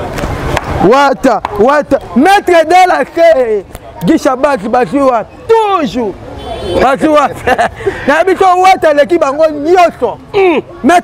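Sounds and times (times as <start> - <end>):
street traffic: 0.0 - 11.0
man talking loudly: 0.8 - 6.2, 6.8 - 11.0.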